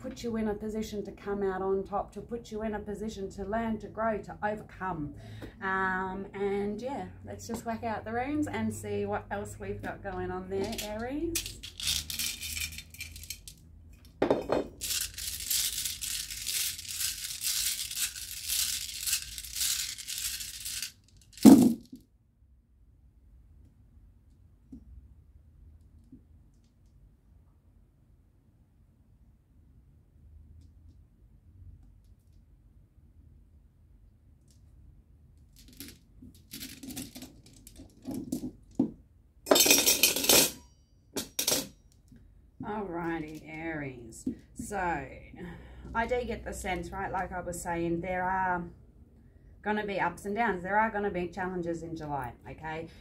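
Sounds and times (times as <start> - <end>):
stones thumping onto table: 14.2 - 14.8, 21.4 - 22.0
small stones clicking and clattering: 14.3 - 21.9.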